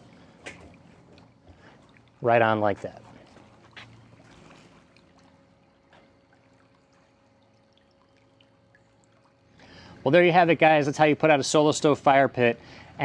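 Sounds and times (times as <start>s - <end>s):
faint steady hum: 0.0s - 13.0s
faint water trickle: 0.0s - 13.0s.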